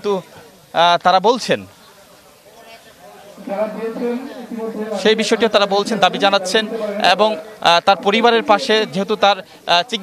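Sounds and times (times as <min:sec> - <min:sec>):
faint background hiss: 0:00.0 - 0:10.0
man speaking: 0:03.3 - 0:10.0.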